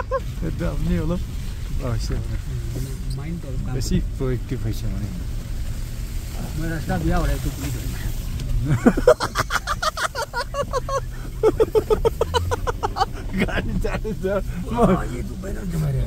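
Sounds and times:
car engine rumble inside cabin: 0.0s - 16.0s.

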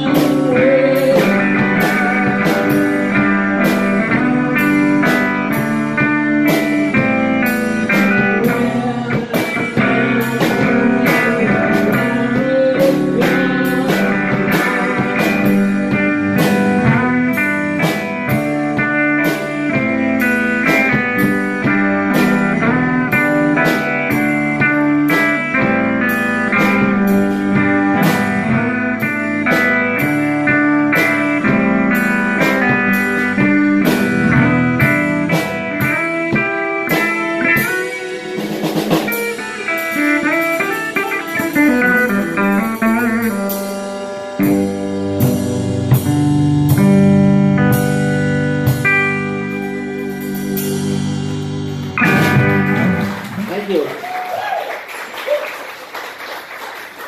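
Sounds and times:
bass guitar: 0.0s - 55.3s
drum kit beat: 0.0s - 57.0s
electric guitar: 0.0s - 57.0s.

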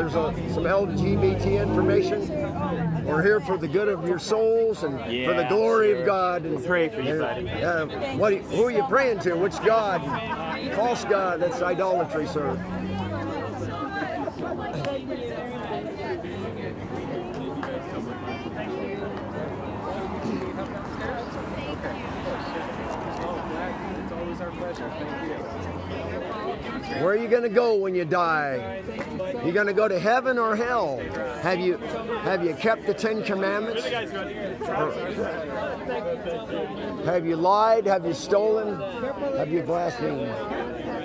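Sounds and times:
babble of overlapping conversation: 0.0s - 41.0s
people chattering: 0.0s - 41.0s.

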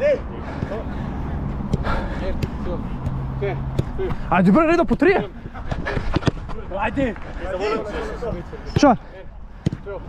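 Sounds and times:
players calling: 0.0s - 10.0s.

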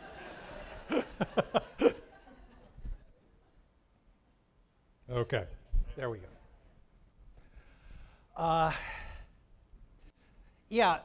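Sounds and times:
man sighing: 8.3s - 9.4s.

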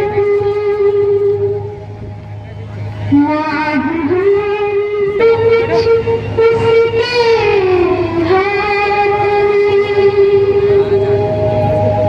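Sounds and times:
live stage music with held notes: 0.0s - 12.0s.

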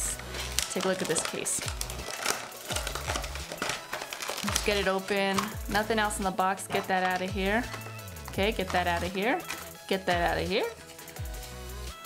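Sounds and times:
cardboard box rustling and crinkling: 0.0s - 9.7s.

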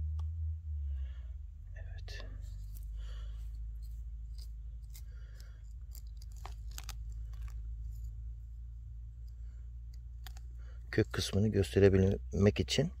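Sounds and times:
steady low rumble: 0.0s - 13.0s
needles and twigs crackling: 2.2s - 12.4s.

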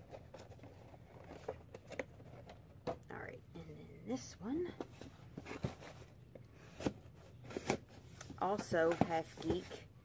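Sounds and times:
cardboard boxes rustling: 0.0s - 3.0s, 4.5s - 9.9s.

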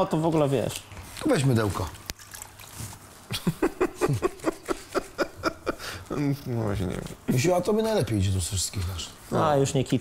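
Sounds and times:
cloth squishing and sloshing in water: 1.2s - 3.3s.

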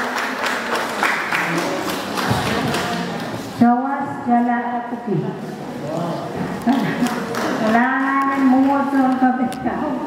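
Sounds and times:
audience applauding: 0.0s - 3.2s, 6.9s - 7.6s.

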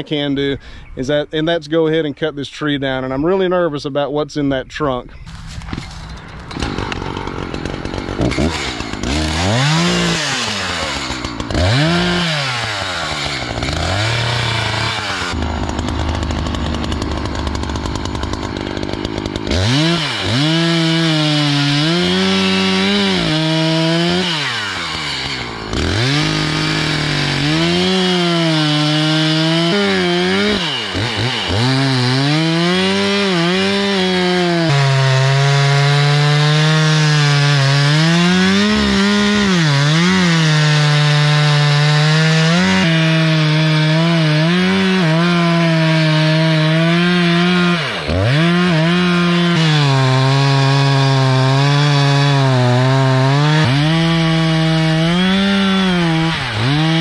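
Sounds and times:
chainsaw revving and sawing: 5.3s - 57.0s.

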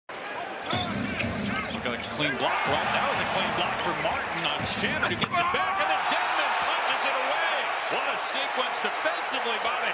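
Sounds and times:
sneakers squeaking: 0.1s - 2.3s
arena crowd noise: 0.1s - 9.9s.

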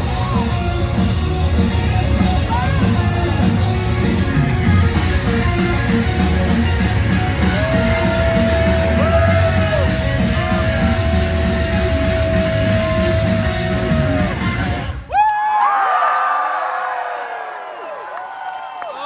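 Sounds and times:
heavy metal band playing live: 0.0s - 15.0s.

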